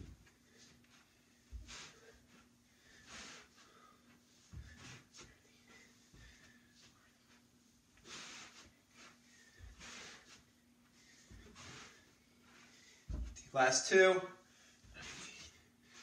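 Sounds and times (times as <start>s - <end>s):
footsteps on carpet: 0.0s - 13.4s.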